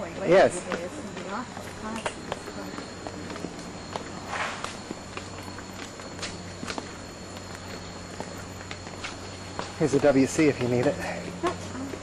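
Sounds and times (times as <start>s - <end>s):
footsteps on paved path: 0.0s - 12.0s.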